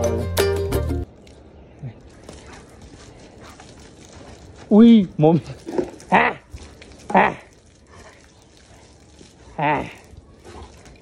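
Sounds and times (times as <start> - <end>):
wet dog moving on concrete: 1.2 - 11.0.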